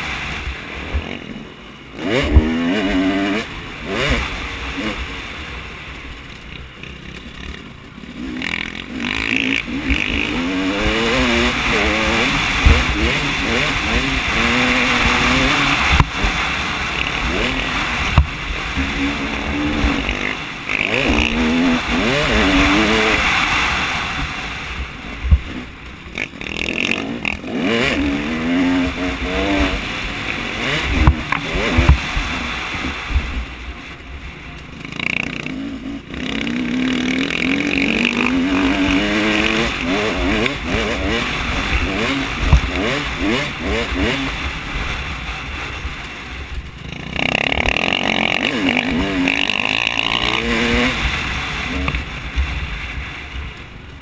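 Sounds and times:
motocross bike engine revving: 0.0s - 54.0s
bike thuds over bumps: 2.2s - 2.6s, 11.6s - 16.6s, 17.2s - 19.0s, 25.2s - 25.7s, 30.7s - 32.2s, 38.1s - 44.2s.

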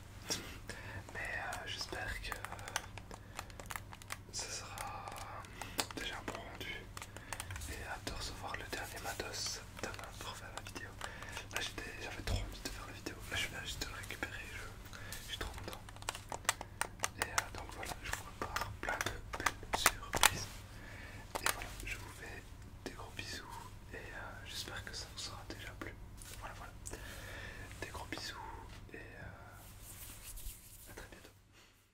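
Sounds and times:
soft whispering: 0.2s - 31.4s.

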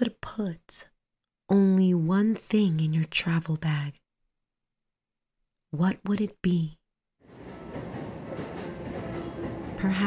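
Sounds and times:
suitcase wheels rumbling on hard surface: 7.3s - 10.0s.

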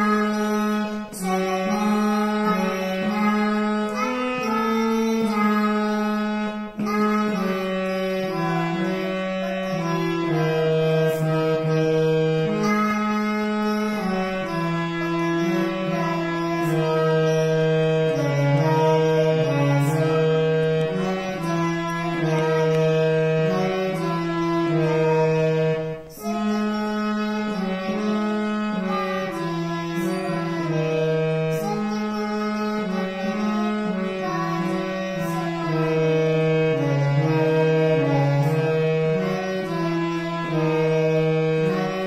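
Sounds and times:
harmonium melody: 0.0s - 42.0s.

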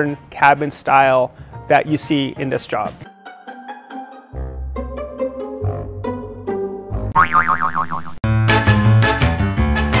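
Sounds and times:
upbeat background music: 0.0s - 10.0s
cartoon boing: 7.1s - 8.2s.

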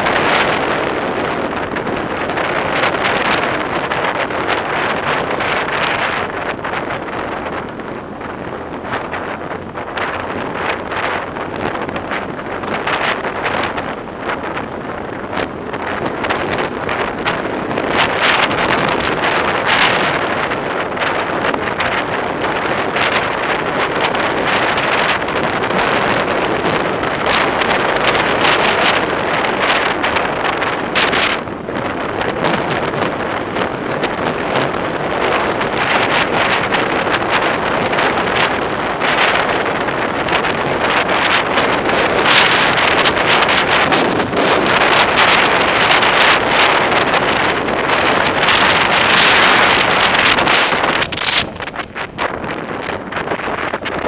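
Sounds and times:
road and traffic noise: 0.0s - 54.0s
wind buffeting microphone: 0.0s - 54.0s.

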